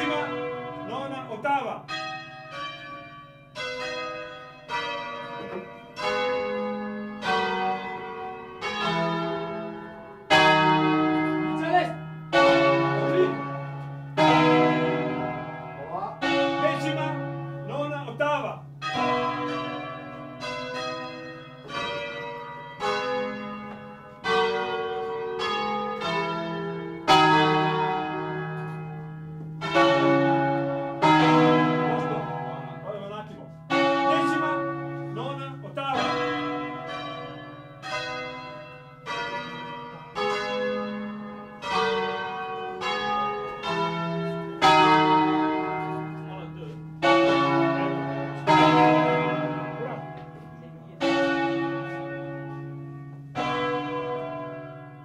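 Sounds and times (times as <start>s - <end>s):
church bells ringing: 0.0s - 55.0s.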